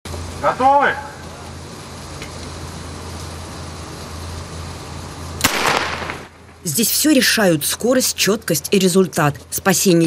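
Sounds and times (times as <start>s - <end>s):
steady low hum: 0.1s - 10.0s
starter pistol shot: 5.4s - 6.3s.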